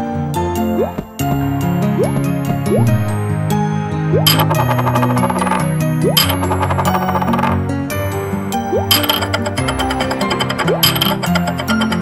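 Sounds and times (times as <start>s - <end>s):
cartoon plate clattering and spinning: 4.3s - 7.6s, 8.7s - 12.0s.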